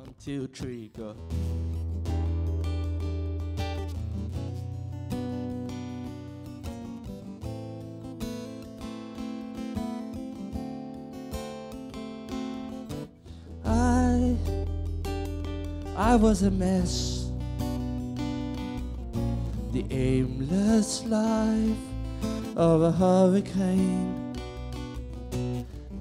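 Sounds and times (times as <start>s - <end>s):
acoustic guitar strumming chords: 0.0s - 26.0s.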